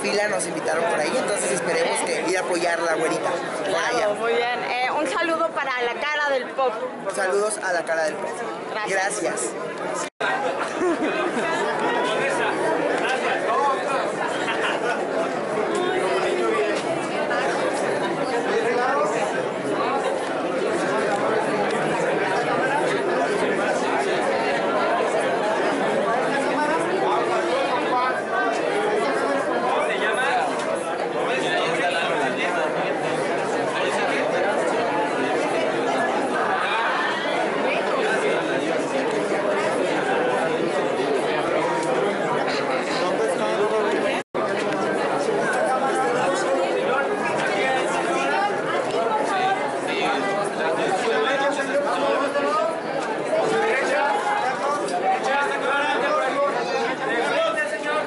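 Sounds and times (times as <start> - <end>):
crowd hubbub: 0.0 - 58.0.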